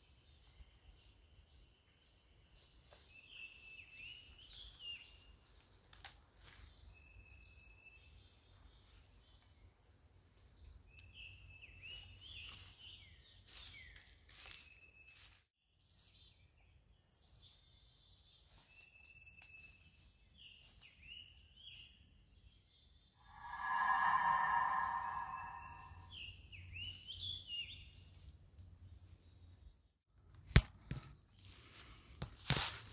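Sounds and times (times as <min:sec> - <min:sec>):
footsteps in dry leaves: 0:13.4 - 0:15.4, 0:31.4 - 0:32.9
loud sustained steady tones: 0:23.2 - 0:26.0
birds chirping: 0:23.2 - 0:26.1.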